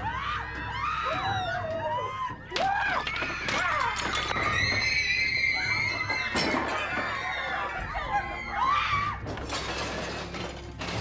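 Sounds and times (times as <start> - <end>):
china plates crashing and breaking: 9.4 - 11.0.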